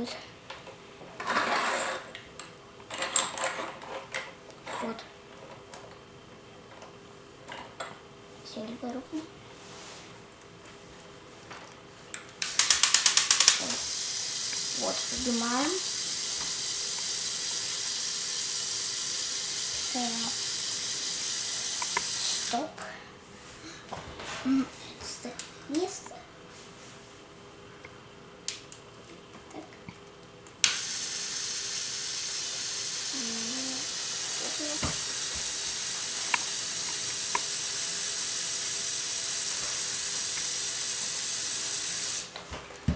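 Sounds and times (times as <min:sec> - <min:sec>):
small electric motor whirring: 0:12.4 - 0:22.6, 0:30.6 - 0:42.3.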